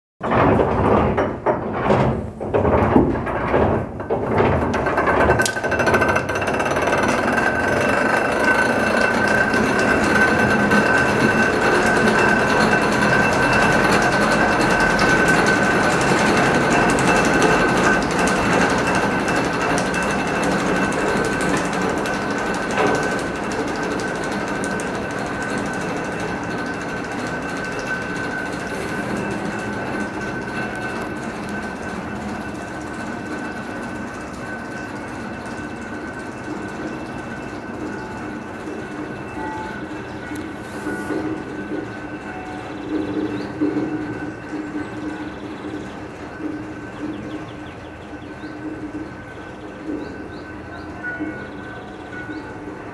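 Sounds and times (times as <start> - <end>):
funicular wheels rattling on track: 0.2 - 52.9
high steady whine: 5.3 - 52.9.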